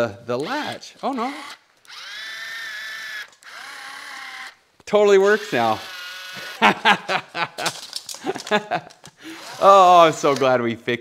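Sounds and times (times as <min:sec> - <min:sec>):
small geared motor whirring: 0:00.4 - 0:04.6, 0:05.2 - 0:06.6, 0:09.2 - 0:10.4.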